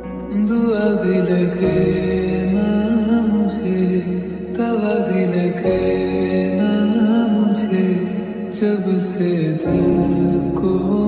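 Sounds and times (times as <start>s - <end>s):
slowed reverb-heavy lofi song: 0.0s - 11.0s.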